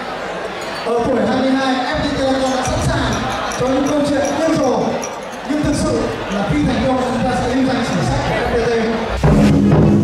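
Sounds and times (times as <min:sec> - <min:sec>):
man speaking through microphone: 0:00.8 - 0:09.2.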